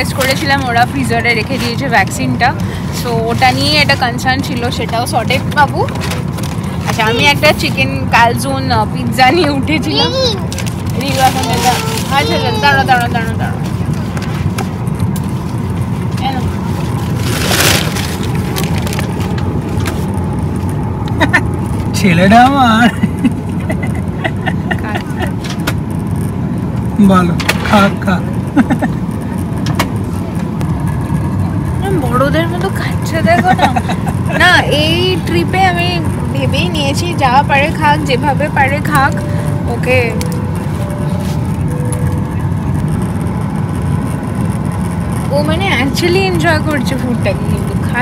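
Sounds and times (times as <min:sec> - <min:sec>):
airliner engine rumble: 0:00.0 - 0:48.0.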